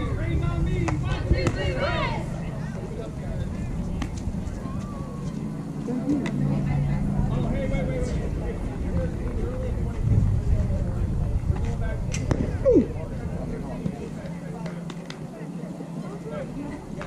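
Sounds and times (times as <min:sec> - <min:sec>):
low outdoor rumble: 0:00.0 - 0:17.0
children shouting and chatter: 0:04.5 - 0:09.8.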